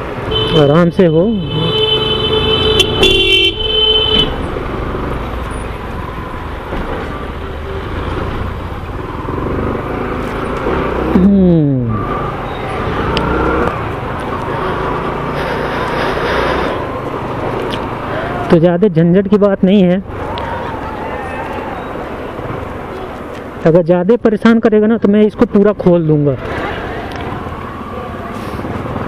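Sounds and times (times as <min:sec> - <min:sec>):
motorcycle engine: 0:00.0 - 0:18.5, 0:26.4 - 0:29.0
vehicle horn: 0:00.3 - 0:04.4.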